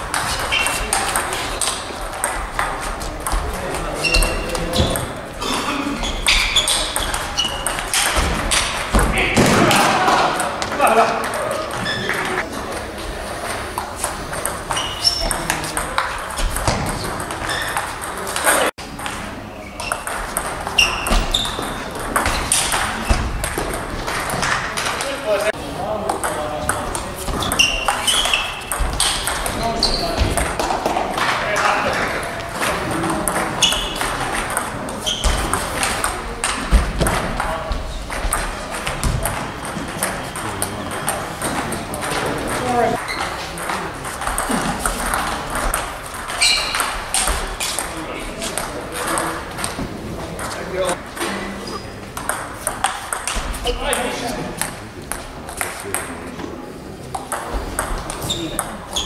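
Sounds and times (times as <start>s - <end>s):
table tennis balls clicking: 0.0s - 5.3s, 6.1s - 9.1s, 13.5s - 25.2s, 26.0s - 56.2s, 57.1s - 59.0s.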